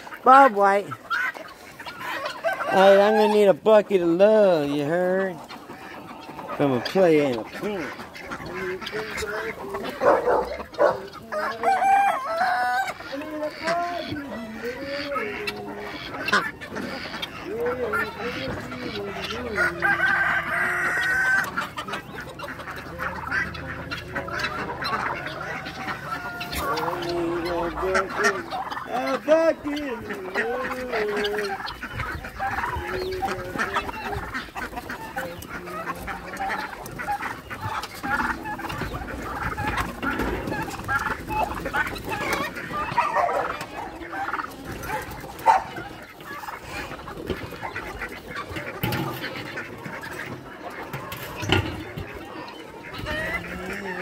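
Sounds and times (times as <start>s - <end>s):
chickens clucking and squawking: 0.0s - 54.0s
roosters crowing: 0.0s - 54.0s.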